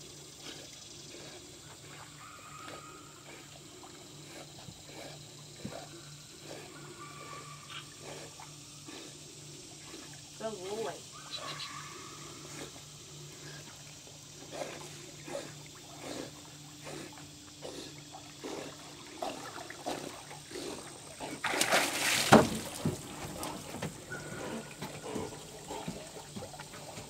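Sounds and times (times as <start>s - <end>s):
water sloshing from swimming dog: 0.0s - 27.0s
loud water splash: 21.4s - 23.0s.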